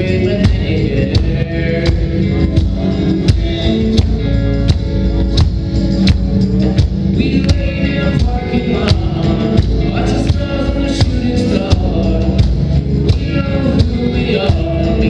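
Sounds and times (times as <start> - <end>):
live indie rock band: 0.0 - 15.0.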